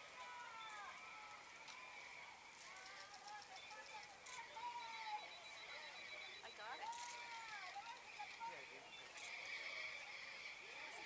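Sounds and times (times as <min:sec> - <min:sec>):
crowd voices outdoors: 0:00.0 - 0:11.0.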